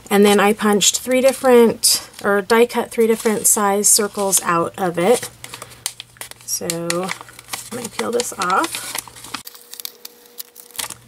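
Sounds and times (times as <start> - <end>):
paper crackling and rustling: 1.1 - 11.0.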